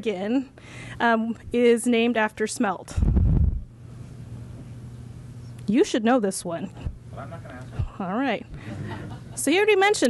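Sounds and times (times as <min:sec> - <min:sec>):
low electrical hum: 0:00.0 - 0:10.0
low rumble on microphone: 0:02.9 - 0:03.8.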